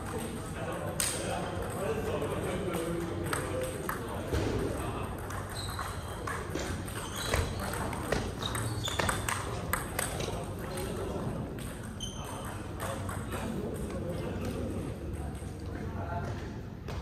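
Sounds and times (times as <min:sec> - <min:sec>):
table tennis balls clicking: 0:00.0 - 0:15.7
background chatter: 0:00.0 - 0:17.0.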